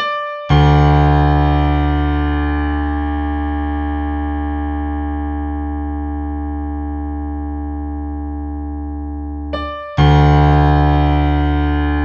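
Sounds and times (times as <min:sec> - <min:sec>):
piano chord ringing: 0:00.0 - 0:05.2, 0:09.5 - 0:12.0.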